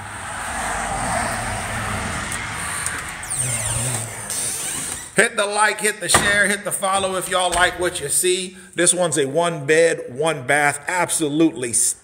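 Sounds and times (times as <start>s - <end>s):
vehicle passing by: 0.0s - 5.1s.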